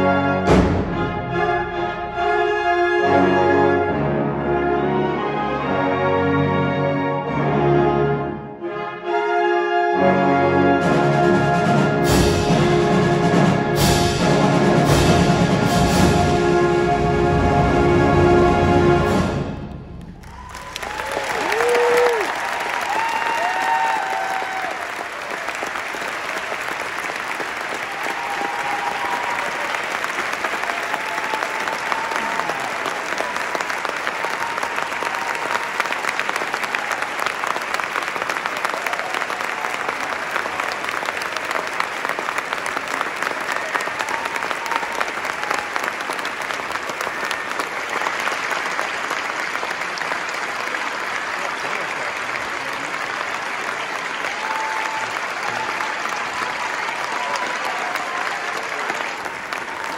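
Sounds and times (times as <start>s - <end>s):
audience applauding: 19.7s - 59.9s
whoops and shouts: 20.2s - 24.9s, 27.9s - 29.8s, 30.7s - 33.3s, 54.3s - 58.6s.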